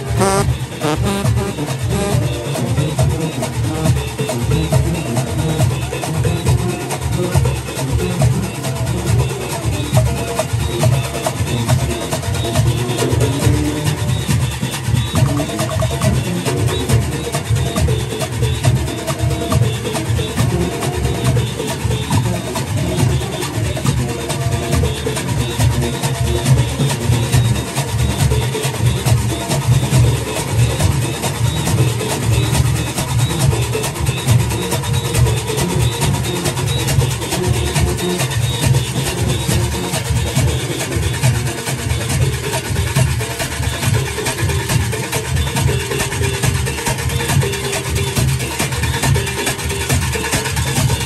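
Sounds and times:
cowbells clanging: 0:00.0 - 0:51.0
drums beating fast rhythm: 0:00.0 - 0:51.0.

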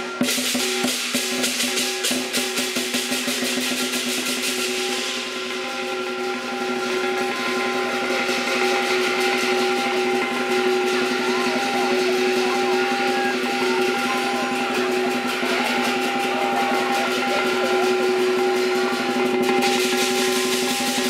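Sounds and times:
cymbals: 0:00.0 - 0:21.0
gong ringing: 0:00.0 - 0:21.0
large drum beaten rapidly: 0:00.0 - 0:21.0.

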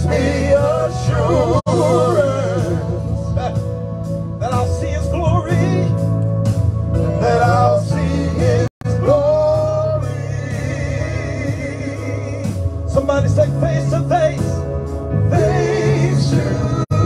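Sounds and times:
men singing gospel song: 0:00.0 - 0:03.7, 0:06.9 - 0:17.0
amplified backing music: 0:00.0 - 0:17.0.

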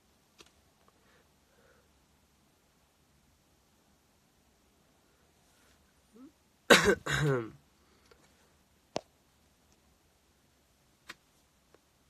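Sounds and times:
man coughing: 0:06.7 - 0:07.6.

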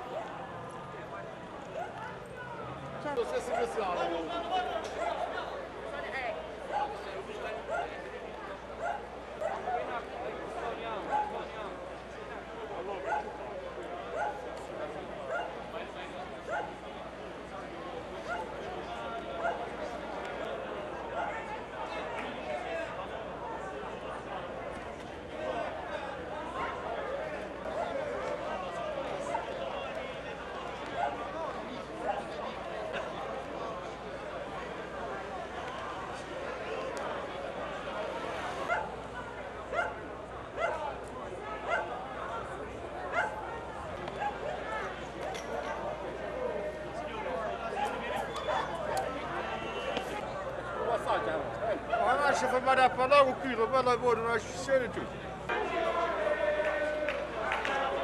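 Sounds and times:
crowd chatter: 0:00.0 - 0:58.0
murmur of voices: 0:00.0 - 0:58.0
dog barking: 0:08.8 - 0:09.7, 0:13.1 - 0:13.3, 0:39.7 - 0:40.0, 0:41.7 - 0:41.9, 0:43.1 - 0:43.4.

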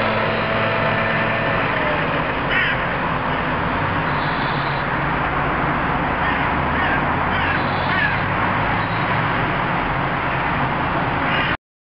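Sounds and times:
harsh bird-like calls: 0:06.2 - 0:09.2, 0:11.3 - 0:11.6.

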